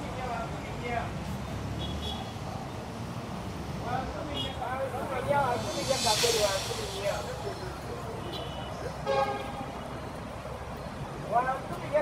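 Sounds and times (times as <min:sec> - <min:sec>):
road traffic: 0:00.0 - 0:12.0
vehicle horn toot: 0:08.4 - 0:09.6.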